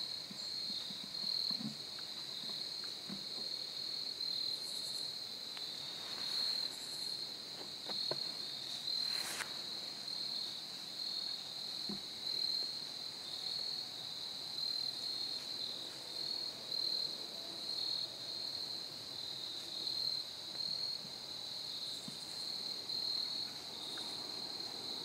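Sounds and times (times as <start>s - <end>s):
crickets chirping: 0.0s - 25.0s
brief rustle: 9.0s - 9.7s.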